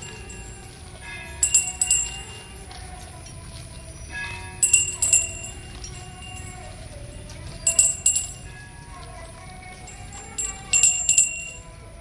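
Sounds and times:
metal bell ringing: 0.0s - 3.4s, 4.0s - 8.9s, 9.8s - 11.9s.

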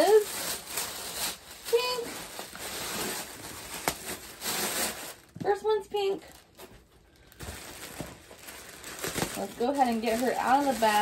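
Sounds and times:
paper and plastic bag rustling: 0.0s - 11.0s.

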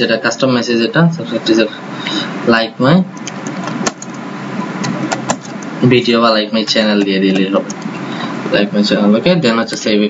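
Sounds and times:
steady background noise: 0.0s - 10.0s
keyboard keys clicking: 3.2s - 4.2s, 6.9s - 7.9s.

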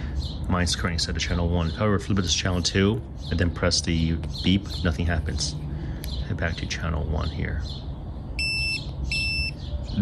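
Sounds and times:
short high electronic beeps: 8.4s - 9.6s.

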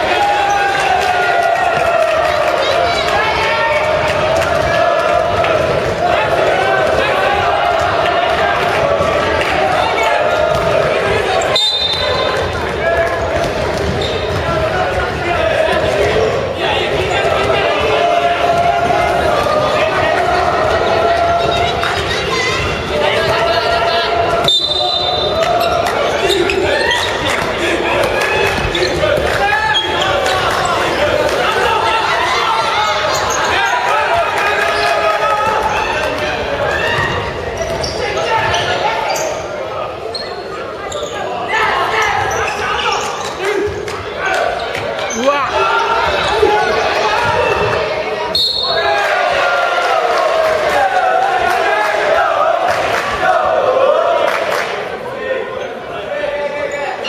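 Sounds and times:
people shouting in a gym: 0.0s - 57.0s
basketball bouncing: 10.4s - 11.0s, 11.8s - 15.3s
referee's whistle blasts: 11.5s - 12.4s, 24.4s - 25.4s, 48.3s - 48.9s.

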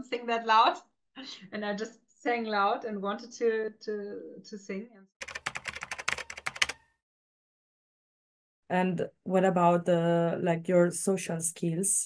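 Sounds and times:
keyboard typing clicks: 5.2s - 6.9s.

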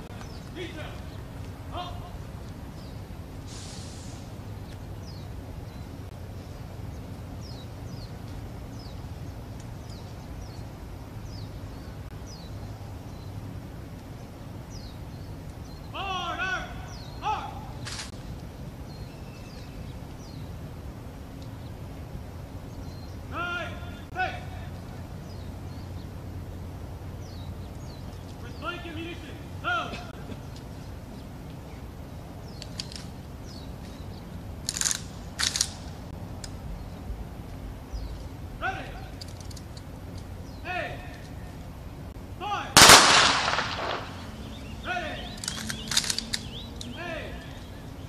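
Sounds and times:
outdoor background noise: 0.0s - 48.0s
man shouting drill command: 1.7s - 2.2s, 15.9s - 17.8s, 23.3s - 24.8s, 28.4s - 30.1s, 38.6s - 39.2s, 40.6s - 41.2s, 42.4s - 42.8s, 44.8s - 45.4s, 46.9s - 47.5s
faint bird chirps: 18.8s - 20.6s
rifle volley echoing: 42.8s - 44.6s.

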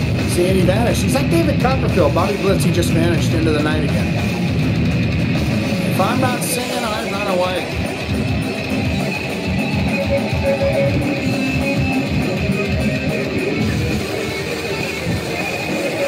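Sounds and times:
thrash metal band playing: 0.0s - 16.0s.

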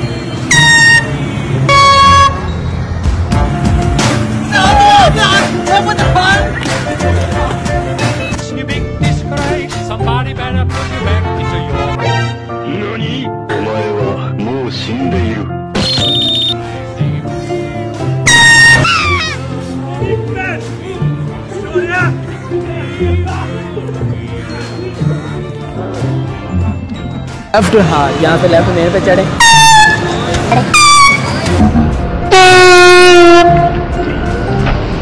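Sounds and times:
background music: 0.0s - 35.0s
air horn blast: 0.5s - 2.5s, 18.2s - 19.4s, 29.4s - 31.5s, 32.3s - 34.2s.

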